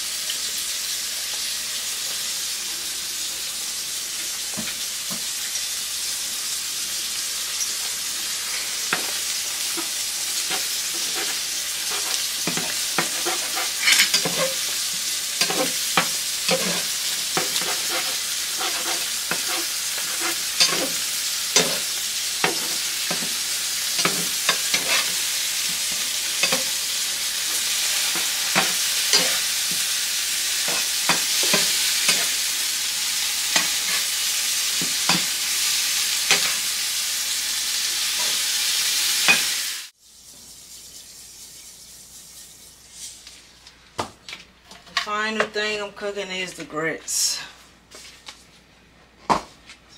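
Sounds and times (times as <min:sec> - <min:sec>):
eggs sizzling in a frying pan: 0:00.0 - 0:43.6
fork clicking and scraping pan: 0:09.8 - 0:14.8, 0:15.4 - 0:21.0, 0:21.6 - 0:26.7, 0:27.8 - 0:29.8, 0:30.7 - 0:32.3.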